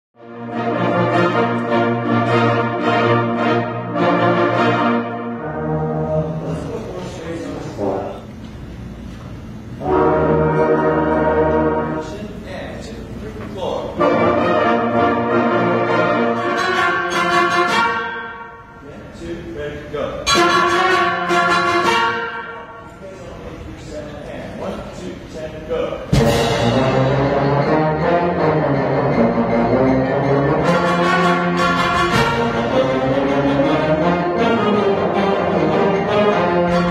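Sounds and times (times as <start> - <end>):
concert band playing chords: 9.8 - 12.4, 26.1 - 36.9.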